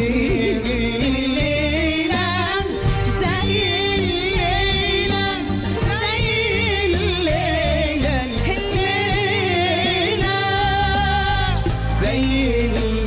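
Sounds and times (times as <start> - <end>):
man singing: 0.0 - 13.0
orchestra of strings and keyboards: 0.0 - 13.0.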